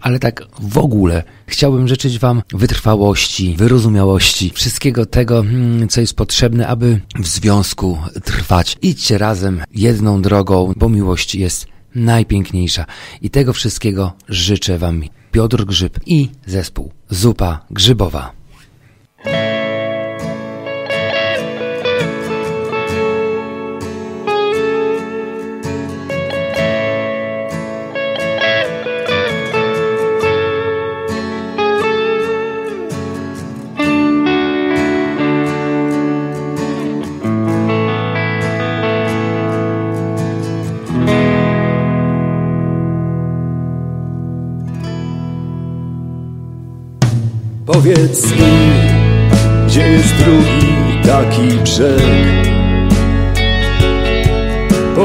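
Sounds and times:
guitar playing plucked melody: 19.2 - 55.0
deeper held notes: 47.7 - 55.0.

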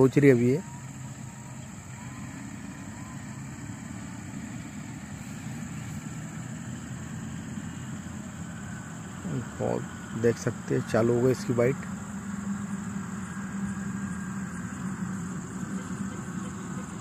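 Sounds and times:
high-pitched insect trill: 0.0 - 17.0
low engine hum: 0.0 - 17.0.

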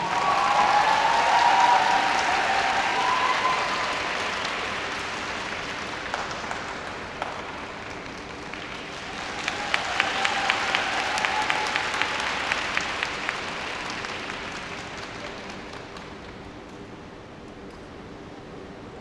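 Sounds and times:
audience applauding: 0.0 - 16.8.

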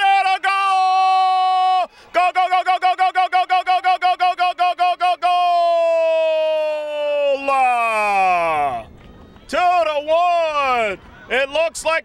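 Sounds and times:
man shouting: 0.0 - 8.8.

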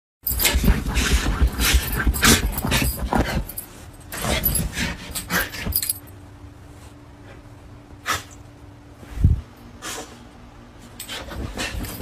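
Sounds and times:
collar tags jingling: 1.8 - 6.1.

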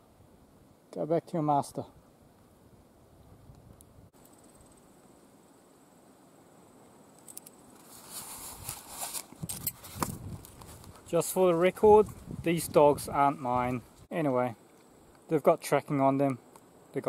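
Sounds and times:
footsteps on gravel: 7.8 - 12.1.

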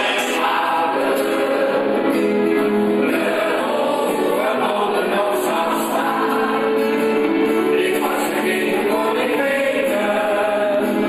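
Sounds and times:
man singing into microphone: 0.0 - 2.0, 3.0 - 11.0
choir singing reggae song: 0.0 - 11.0.

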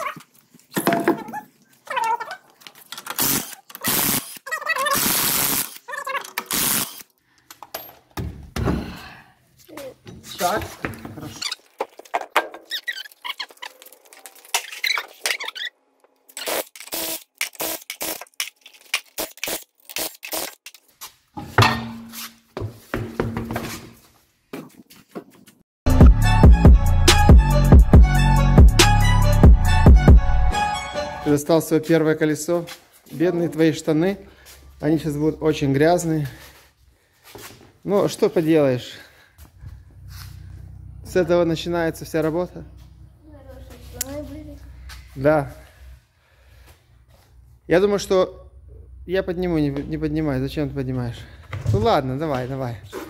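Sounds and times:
tyre knocks and clunks on concrete: 0.8 - 1.4, 8.2 - 8.9, 10.1 - 12.7, 21.4 - 25.3.

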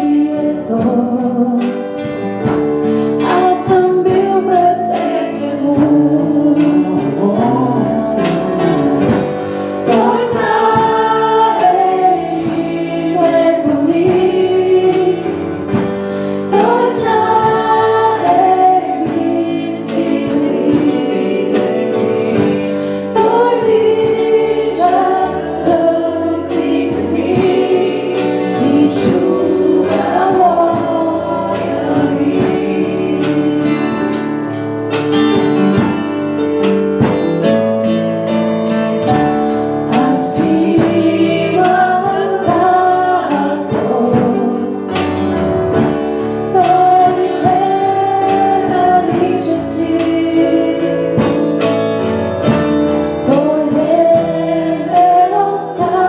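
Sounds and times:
woman singing: 0.0 - 2.2, 3.1 - 9.2, 9.9 - 34.2, 39.9 - 45.2, 46.5 - 51.6, 53.2 - 56.0
acoustic guitar: 0.0 - 56.0
drum kit: 0.0 - 56.0.

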